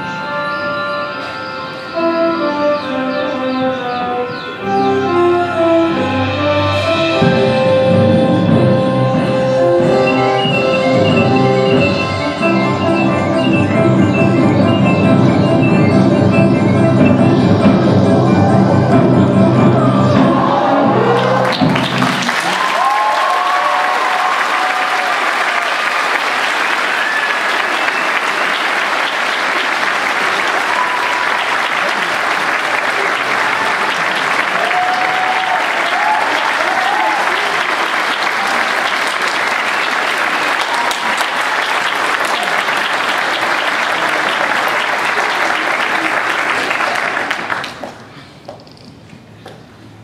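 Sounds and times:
music: 0.0s - 22.5s
audience applauding: 20.8s - 48.2s.

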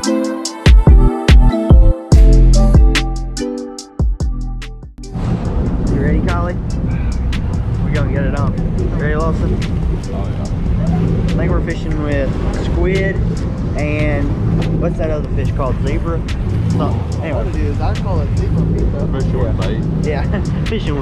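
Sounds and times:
boat engine rumbling: 4.5s - 21.0s
people talking: 5.8s - 6.6s, 7.8s - 21.0s.

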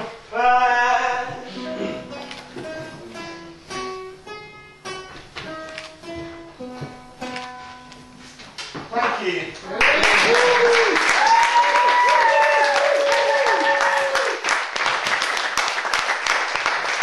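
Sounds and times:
acoustic guitar plucked notes: 0.0s - 8.6s.

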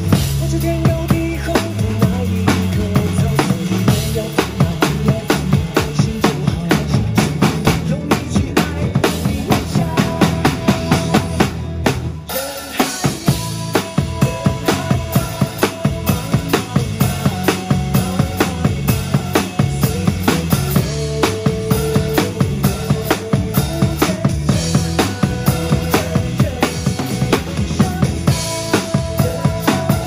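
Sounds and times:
drum kit playing: 0.0s - 30.0s
pop backing track: 0.0s - 30.0s.

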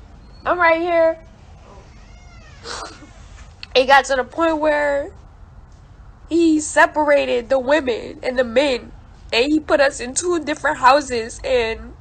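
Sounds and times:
woman crying: 2.6s - 3.3s.

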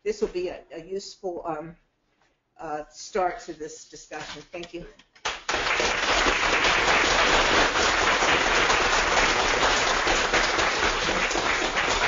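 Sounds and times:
audience applauding: 5.2s - 12.0s.

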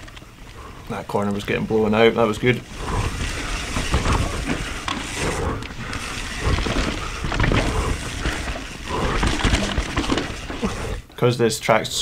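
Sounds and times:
bike tyres on dirt: 0.0s - 11.1s
bike knocks and rattles: 2.2s - 11.0s
wind rumbling on microphone: 2.6s - 11.0s.

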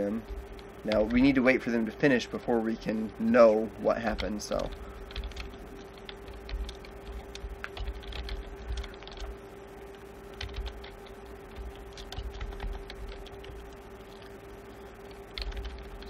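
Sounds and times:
steady hum: 0.0s - 16.0s
keyboard typing: 0.2s - 1.4s, 4.0s - 16.0s.

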